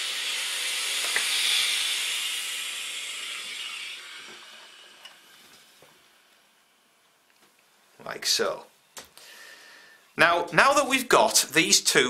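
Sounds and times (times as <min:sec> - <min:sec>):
steam iron hissing: 0:00.0 - 0:06.6.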